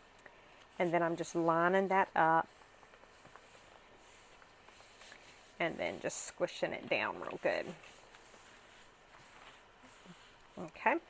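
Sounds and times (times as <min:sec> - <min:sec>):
hand rustling paper: 0:00.4 - 0:06.1, 0:06.9 - 0:10.7.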